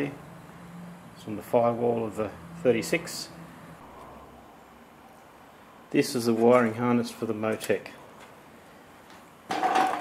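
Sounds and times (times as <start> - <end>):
hard object clattering: 9.5 - 10.0.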